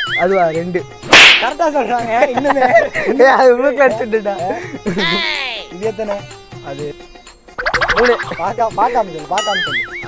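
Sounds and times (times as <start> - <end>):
whip crack swish: 1.1 - 1.6
warbling pitched sound: 7.6 - 8.4.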